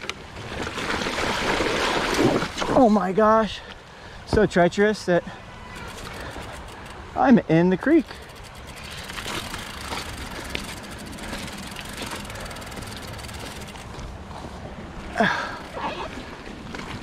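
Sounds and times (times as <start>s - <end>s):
bike clicks and rattles: 5.7s - 14.5s
bike tyres crunching on gravel: 7.8s - 15.6s.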